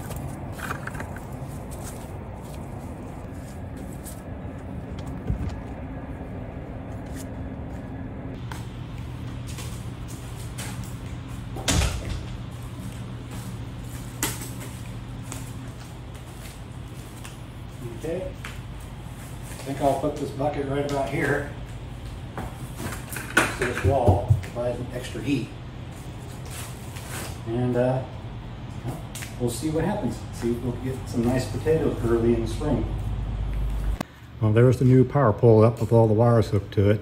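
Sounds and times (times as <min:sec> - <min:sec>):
steady low hum: 0:00.0 - 0:37.0.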